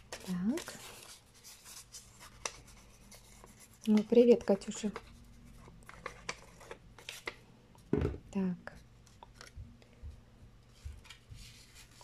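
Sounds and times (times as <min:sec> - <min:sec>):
paper rustling: 0:10.7 - 0:12.0.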